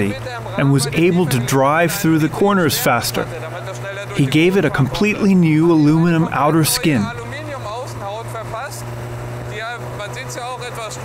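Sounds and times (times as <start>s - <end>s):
men talking quietly: 0.0s - 8.8s
car engine cruising: 0.0s - 11.0s.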